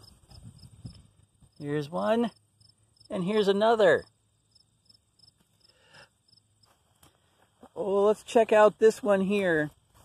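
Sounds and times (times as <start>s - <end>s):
cricket chirping: 0.0s - 10.0s.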